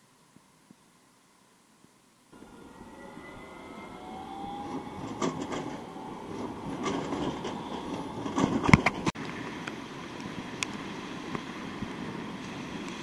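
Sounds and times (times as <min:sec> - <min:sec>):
motor whine: 0:02.4 - 0:08.4
tram rumbling past: 0:02.4 - 0:13.0
wheels clicking on rails: 0:02.4 - 0:13.0.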